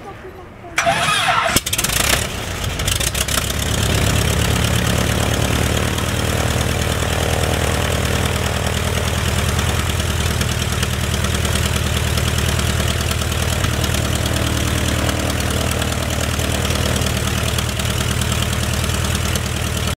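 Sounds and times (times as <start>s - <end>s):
aircraft piston engine starting: 0.8s - 19.9s.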